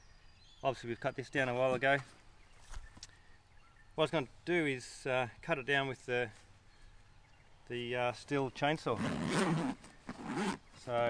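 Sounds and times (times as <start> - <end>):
zipper being pulled open: 9.0 - 10.7.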